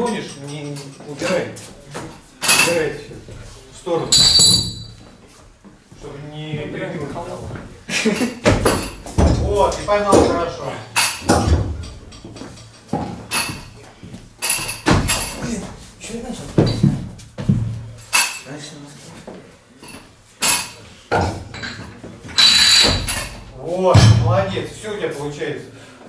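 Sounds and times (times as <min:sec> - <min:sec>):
people talking: 0:00.0 - 0:03.2, 0:06.0 - 0:08.3, 0:09.2 - 0:11.7, 0:23.6 - 0:25.7
metal weight plates clanking: 0:22.4 - 0:23.6.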